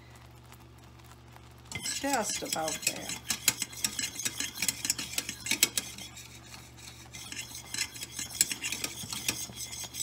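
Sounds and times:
faint steady hum: 0:00.0 - 0:10.0
syrup bubbling in a saucepan: 0:00.0 - 0:10.0.

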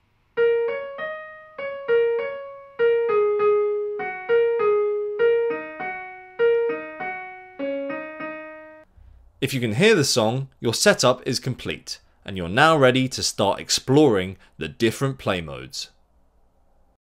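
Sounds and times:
digital piano melody: 0:00.4 - 0:08.9.

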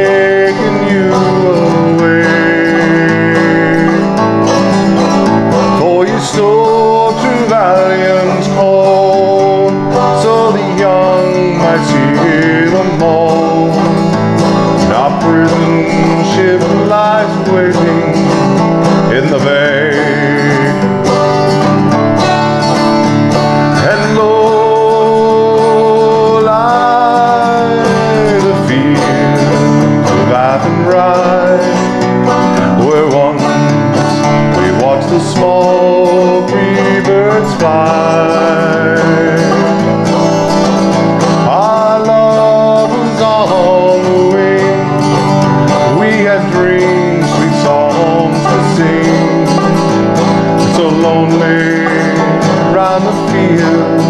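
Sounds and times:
man singing a slow ballad: 0:00.0 - 0:21.5, 0:23.4 - 0:54.0
acoustic guitar strumming: 0:00.0 - 0:54.0
banjo played clawhammer style: 0:00.0 - 0:54.0.

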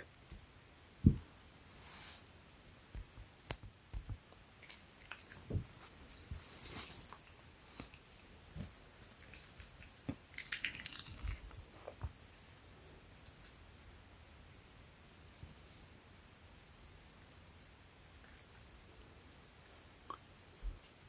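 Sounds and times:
fabric rustling: 0:05.1 - 0:09.8.

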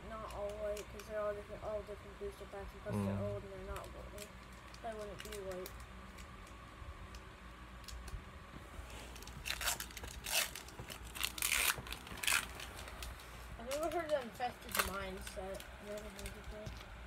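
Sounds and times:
person making short vocal sound: 0:02.9 - 0:03.4
foil wrapper crinkling and tearing: 0:03.7 - 0:06.3, 0:09.1 - 0:16.8.

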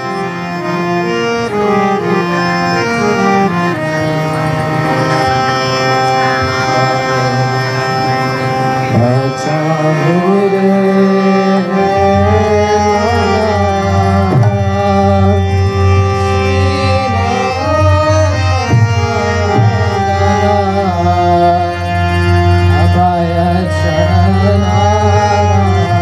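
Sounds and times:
harmonium: 0:00.0 - 0:26.0
tabla: 0:00.0 - 0:26.0.

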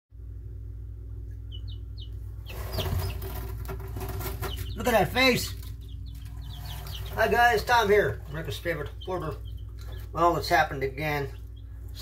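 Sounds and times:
low hum: 0:00.2 - 0:12.0
chicks peeping: 0:01.1 - 0:12.0
rustling in wood shavings: 0:02.4 - 0:10.5.

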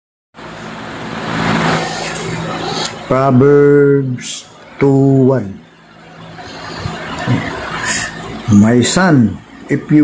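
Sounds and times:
steady rushing noise: 0:00.4 - 0:10.0.

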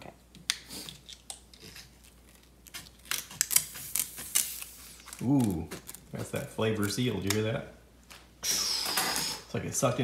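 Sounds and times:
stiff packaging crackling: 0:00.4 - 0:08.3
scissors snipping packaging: 0:00.5 - 0:07.4.

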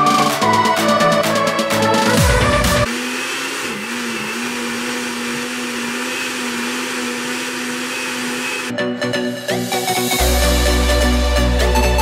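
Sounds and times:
blender running: 0:02.0 - 0:08.7.

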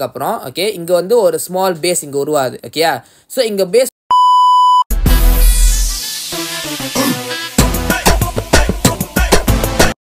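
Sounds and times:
high test tone beep: 0:04.1 - 0:04.9
music: 0:04.9 - 0:10.0.

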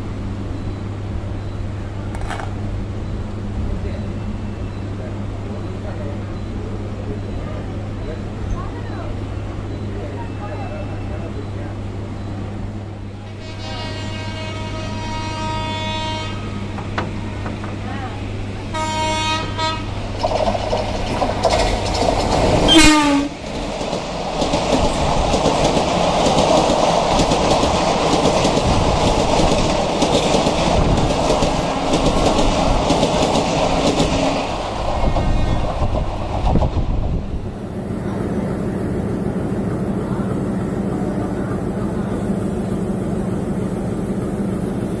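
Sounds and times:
diesel locomotive idling: 0:00.0 - 0:45.0
train coaches rumbling past: 0:00.0 - 0:45.0
train air horn: 0:13.3 - 0:17.4, 0:18.7 - 0:19.9, 0:22.7 - 0:23.3.

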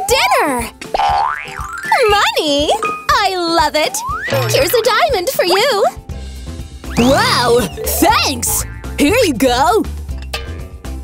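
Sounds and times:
background music: 0:00.0 - 0:11.0
excited voice: 0:07.0 - 0:08.6.

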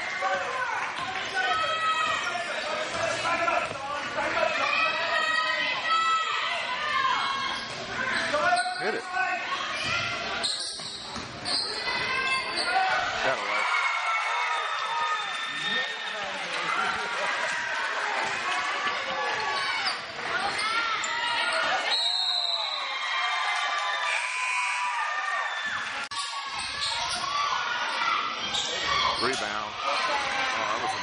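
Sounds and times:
sneaker squeaks: 0:07.3 - 0:13.0, 0:19.4 - 0:22.8, 0:25.7 - 0:30.1.

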